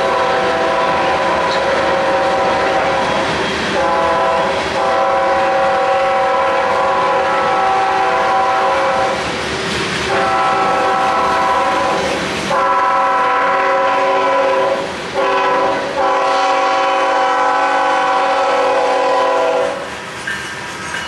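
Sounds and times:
locomotive air horn blasts: 0.0s - 9.2s, 10.1s - 19.9s
train wheels clacking on rail joints: 0.0s - 12.7s, 18.4s - 21.0s.

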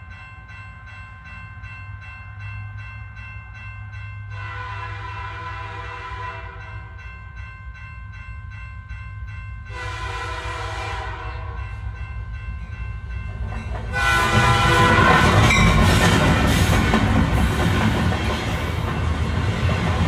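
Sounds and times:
train rumbling on rails: 2.4s - 20.0s
train horn: 4.4s - 6.8s, 9.7s - 11.8s, 13.9s - 15.8s.

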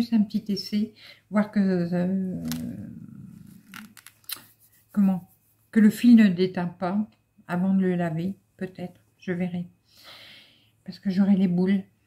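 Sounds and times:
woman speaking: 0.0s - 3.9s, 4.9s - 9.8s, 10.9s - 12.0s
breath: 9.9s - 10.8s.

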